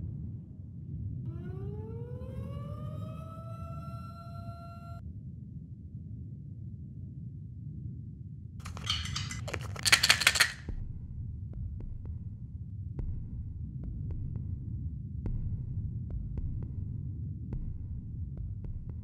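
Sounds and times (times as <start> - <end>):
bottle opening rattling clicks: 8.6 - 10.6.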